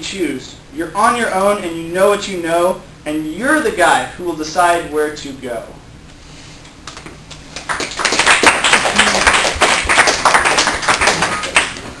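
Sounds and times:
audience applauding: 0:07.5 - 0:12.0.

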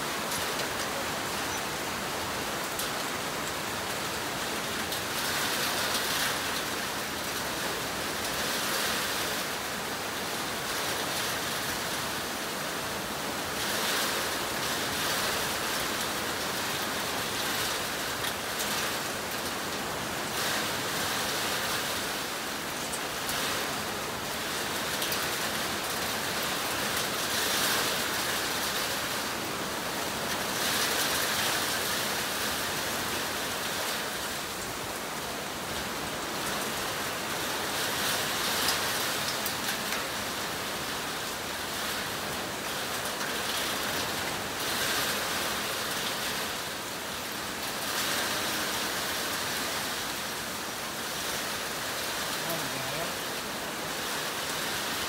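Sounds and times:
heavy rain in windy storm: 0:00.0 - 0:55.0.

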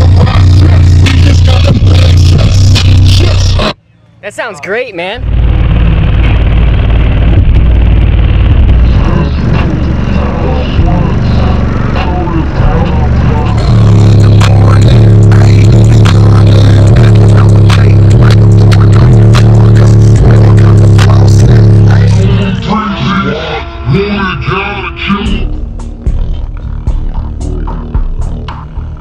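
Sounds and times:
bass-heavy music from car subwoofers: 0:00.0 - 0:29.0.

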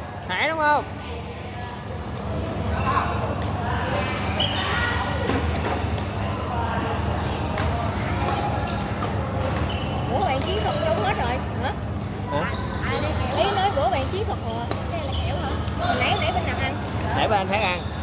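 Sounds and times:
voices in a hall: 0:00.0 - 0:18.0
sneakers squeaking on floor: 0:03.8 - 0:06.0, 0:08.6 - 0:14.1, 0:14.7 - 0:16.8.

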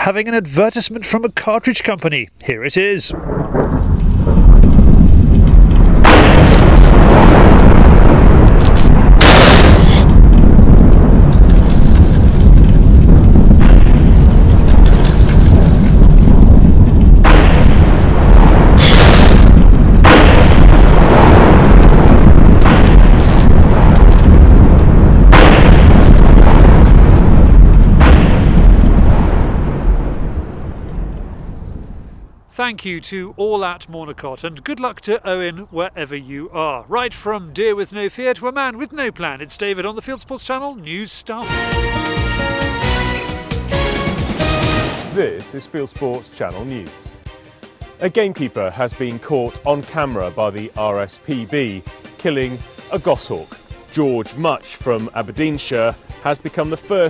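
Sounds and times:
deep cinematic rumble: 0:03.1 - 0:32.4
sharp hits: 0:05.7 - 0:16.1, 0:17.1 - 0:30.2.

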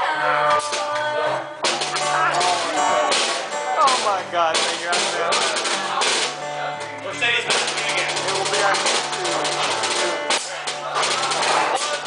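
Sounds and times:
live band with acoustic guitar: 0:00.0 - 0:12.0.

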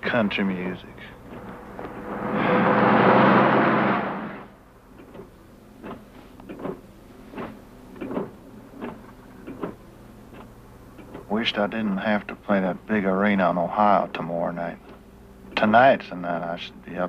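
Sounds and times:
car engine and road hum: 0:00.9 - 0:13.2
loud rushing noise: 0:01.4 - 0:04.6.

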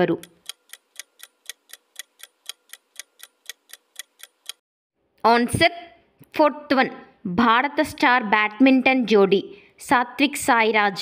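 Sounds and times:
clock ticking: 0:00.0 - 0:04.6.

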